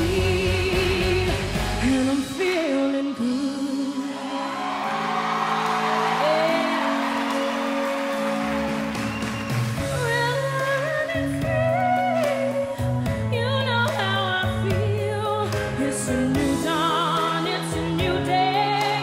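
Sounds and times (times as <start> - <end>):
woman singing wordless vocals: 0.0 - 4.5, 10.0 - 19.0
live band chords: 0.0 - 19.0.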